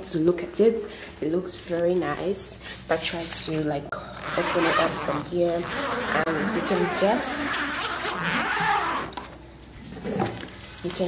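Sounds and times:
zipper on fabric bag: 4.2 - 9.3.

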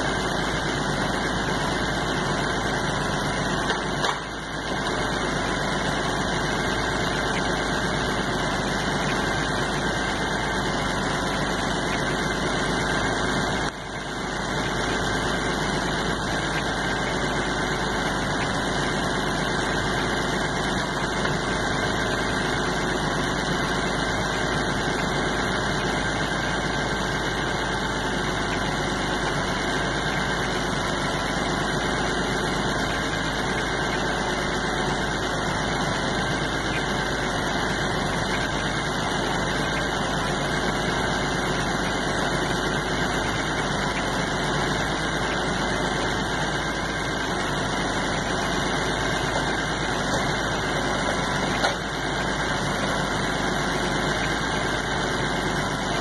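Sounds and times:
tractor diesel engine running: 0.0 - 56.0.

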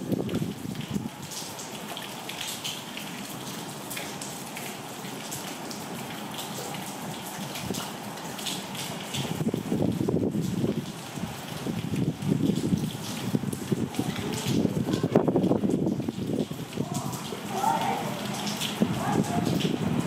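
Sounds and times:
heavy rain: 0.0 - 20.0.

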